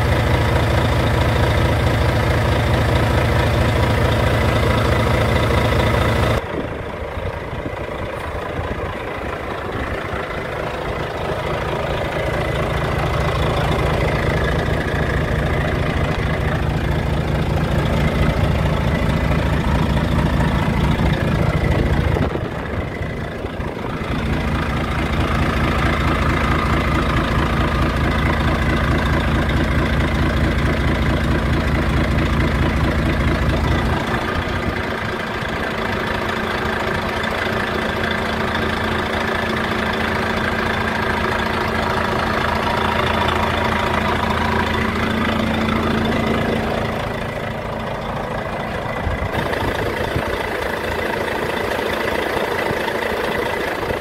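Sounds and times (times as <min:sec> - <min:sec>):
diesel truck engine idling: 0:00.0 - 0:54.0.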